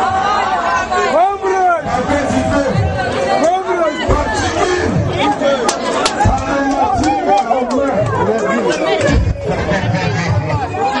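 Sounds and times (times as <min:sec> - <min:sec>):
crowd talking and shouting: 0:00.0 - 0:11.0
low thumps: 0:04.0 - 0:05.4, 0:06.0 - 0:07.3, 0:09.0 - 0:10.7.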